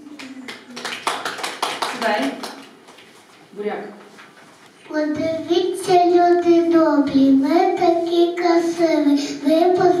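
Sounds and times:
people clapping: 0.0 - 3.1.

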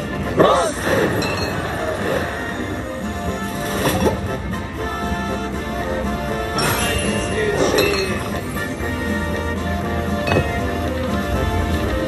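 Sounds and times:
slot machine bonus music: 0.0 - 12.0
glassy clinking effects: 1.0 - 2.4, 6.6 - 9.0, 10.2 - 10.8.

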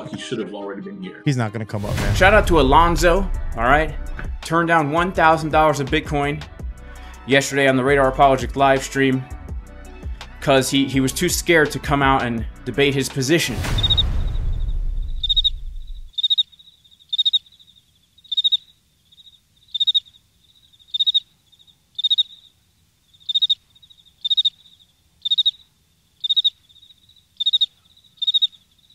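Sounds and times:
cricket chirping: 13.7 - 28.9.

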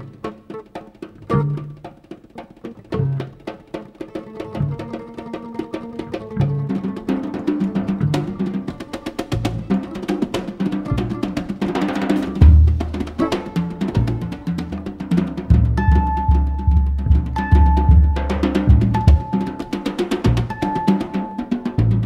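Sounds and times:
hand strokes on snare drum: 0.0 - 22.0
double bass playing low notes: 1.2 - 1.8, 4.5 - 5.0, 9.3 - 10.1, 10.7 - 21.1, 21.7 - 22.0.

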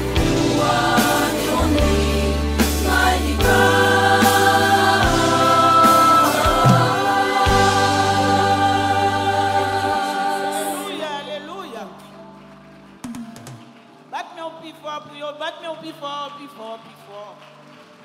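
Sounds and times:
band accompaniment: 0.0 - 11.0
women's choir singing harmonies: 0.0 - 11.6.

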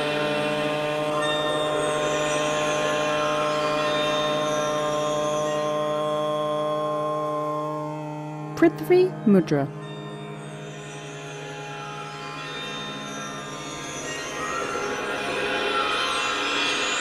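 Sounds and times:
sustained drone music: 0.0 - 17.0.

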